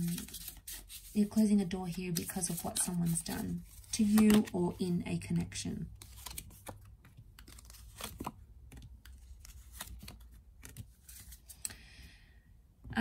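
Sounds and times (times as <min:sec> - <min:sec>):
cards tapping and flicking: 0:02.1 - 0:04.6, 0:06.0 - 0:11.6.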